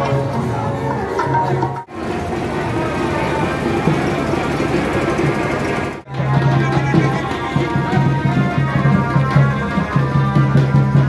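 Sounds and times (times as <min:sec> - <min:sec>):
music playing: 0:00.0 - 0:11.0
street noise: 0:00.0 - 0:11.0.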